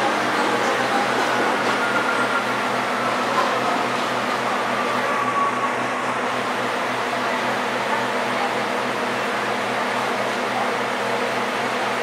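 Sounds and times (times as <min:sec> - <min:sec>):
diesel locomotive engine throbbing: 0:00.0 - 0:12.0.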